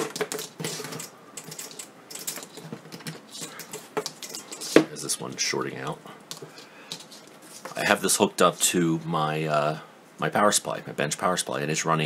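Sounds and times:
tools clicking and clattering on workbench: 0.0s - 4.9s.

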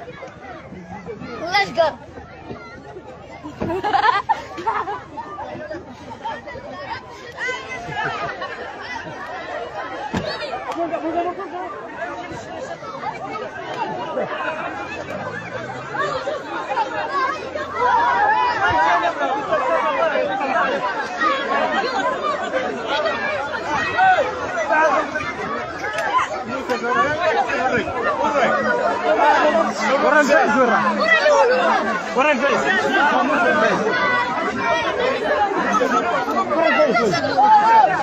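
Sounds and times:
crowd chatter: 0.0s - 38.0s
people shouting: 7.3s - 38.0s.

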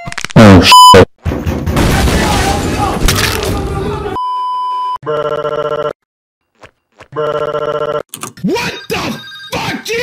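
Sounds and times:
cartoon telephone bell ringing: 8.6s - 10.0s.

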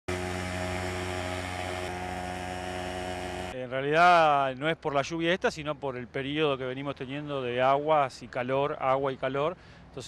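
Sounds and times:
fogging machine droning: 0.1s - 3.6s.

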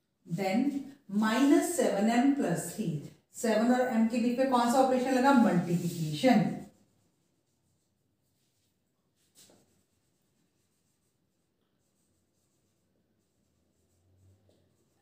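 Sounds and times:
marker writing on whiteboard: 0.3s - 15.0s.

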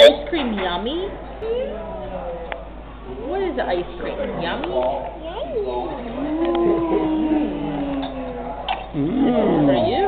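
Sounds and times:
person humming: 6.2s - 8.4s, 9.0s - 9.9s.

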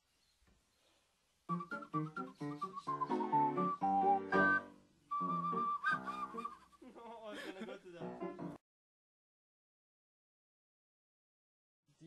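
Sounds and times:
ocarina melody: 1.5s - 6.7s.

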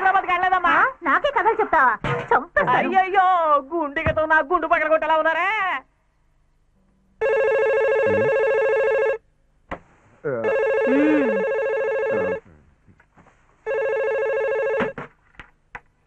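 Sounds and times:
landline telephone ringing: 7.2s - 9.2s, 10.4s - 12.4s, 13.7s - 15.0s.

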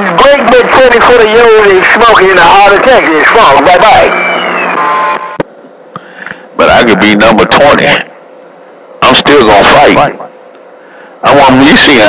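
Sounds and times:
radio static hiss: 0.0s - 12.0s.

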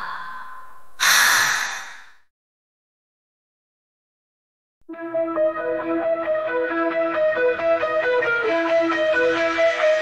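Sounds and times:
loud breathy exhale: 0.0s - 2.3s.

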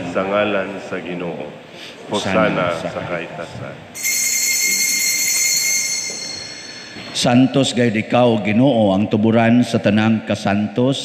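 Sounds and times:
bell ringing: 4.0s - 7.9s.

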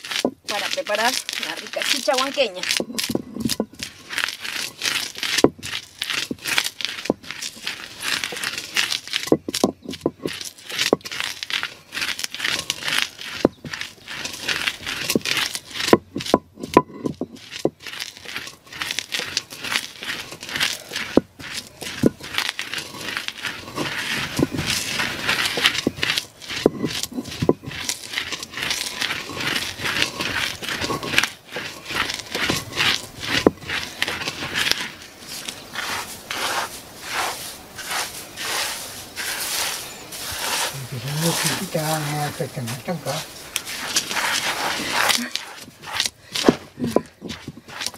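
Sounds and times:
grain crunching under stone roller: 0.0s - 47.9s
stone scraping on stone: 0.0s - 47.9s.

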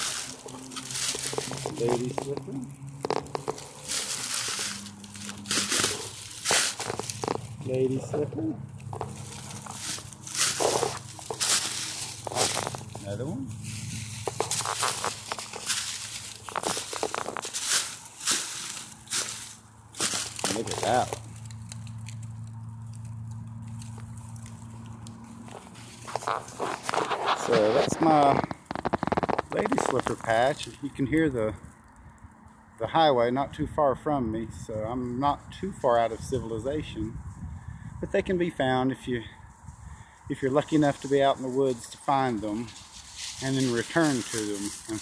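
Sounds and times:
footsteps crunching through dry leaves: 0.0s - 30.9s, 39.4s - 45.0s
distant highway traffic drone: 0.0s - 45.0s.

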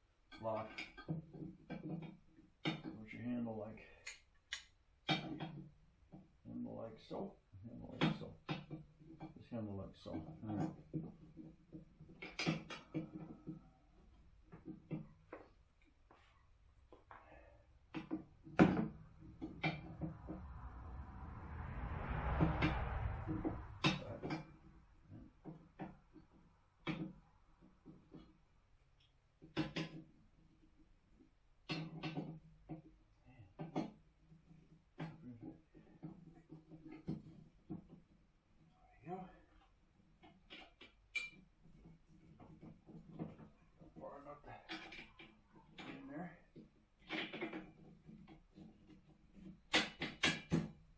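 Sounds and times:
rushing noise: 19.8s - 25.0s
metal clicks and clanks: 39.6s - 46.0s.

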